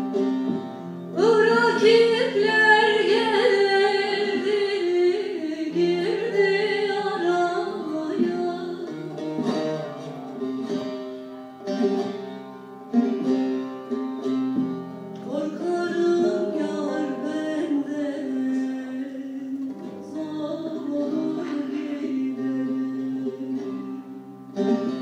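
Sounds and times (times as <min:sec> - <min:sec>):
long-necked lutes playing: 0:00.0 - 0:25.0
plucked lute notes: 0:00.0 - 0:25.0
woman singing folk song: 0:01.1 - 0:09.8, 0:15.2 - 0:25.0.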